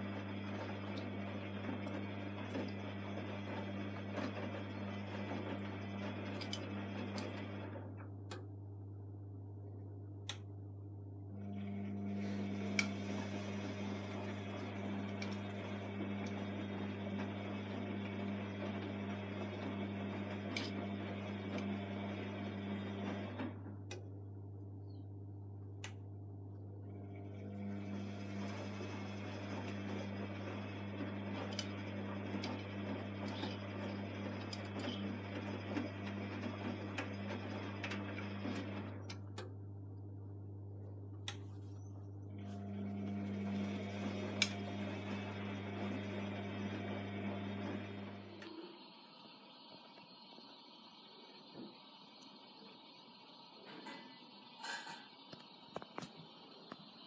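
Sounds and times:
washing machine mechanical whirring: 0.0s - 57.0s.

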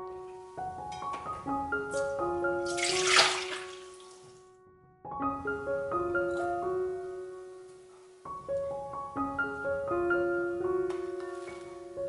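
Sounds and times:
liquid pouring into strainer: 2.7s - 3.9s.

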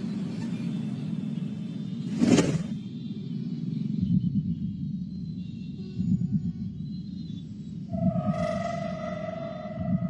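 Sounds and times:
low rumbling drone: 3.7s - 10.0s.

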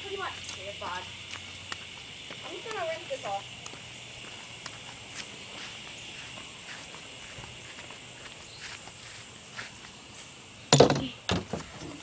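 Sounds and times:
high-pitched insect drone: 0.0s - 12.0s
footsteps on grass: 0.5s - 10.6s.

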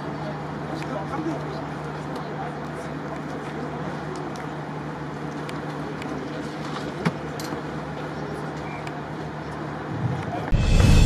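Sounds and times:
stadium low hum: 0.0s - 11.0s.

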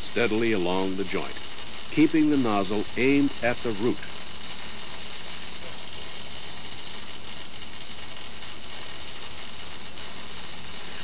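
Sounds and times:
welding arc hissing: 0.0s - 11.0s.

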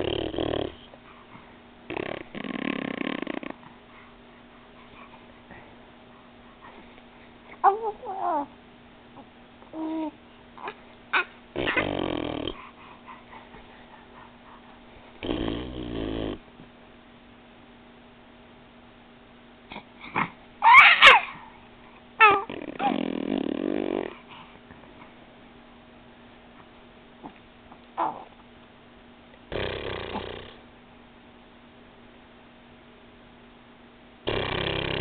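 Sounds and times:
faint steady hum: 0.0s - 35.0s
baby grunting: 9.8s - 12.7s, 22.2s - 24.1s
baby squealing: 20.6s - 21.4s.

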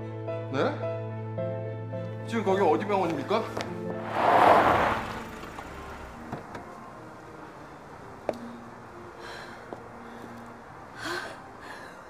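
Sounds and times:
car engine humming: 3.7s - 11.6s.

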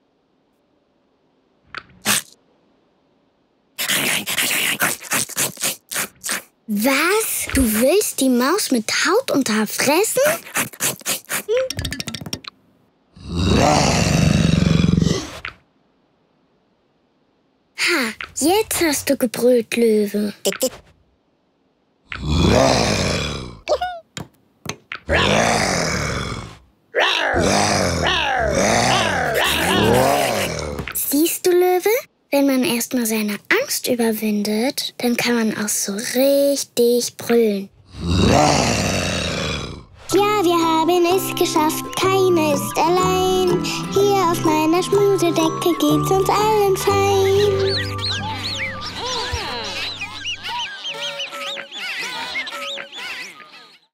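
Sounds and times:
cartoon character laughing deeply: 28.4s - 30.6s, 47.4s - 50.7s
theme tune music: 40.2s - 50.2s
squeaky cartoon animal calls: 47.2s - 53.9s.

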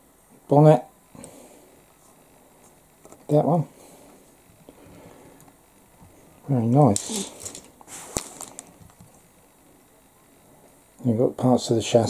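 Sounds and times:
cellophane bag crinkling: 7.0s - 9.0s.

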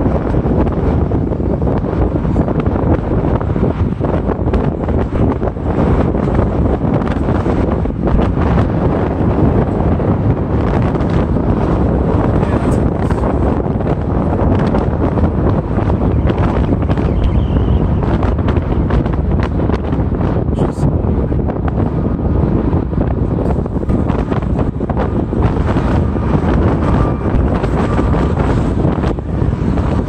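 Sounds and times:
car road noise: 0.0s - 30.0s
wind buffeting microphone: 0.0s - 30.0s.

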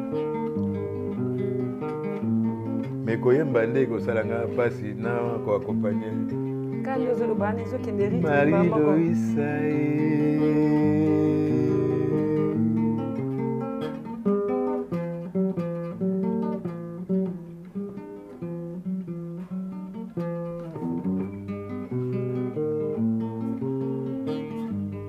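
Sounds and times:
classical guitar playing: 0.0s - 25.0s.

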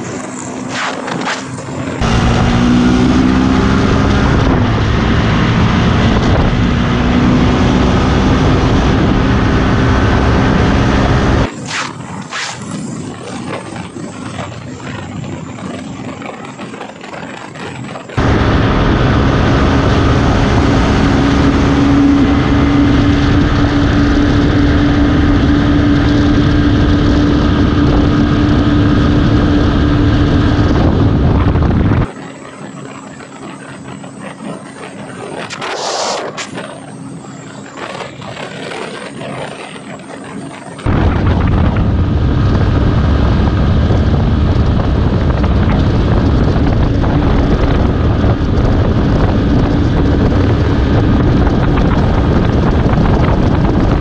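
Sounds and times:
motorcycle engine running steadily: 0.0s - 11.5s, 12.1s - 35.6s, 36.3s - 54.0s
motorcycle passing by: 0.0s - 11.5s
wind over microphone: 0.0s - 54.0s.

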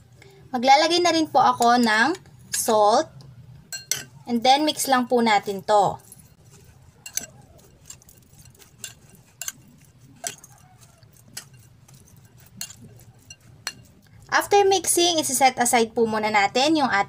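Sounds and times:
fingers clicking against glass bowl: 6.0s - 14.3s.

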